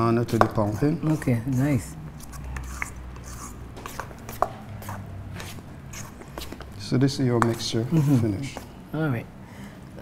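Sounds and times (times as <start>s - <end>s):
spoon stirring batter: 0.0s - 8.7s.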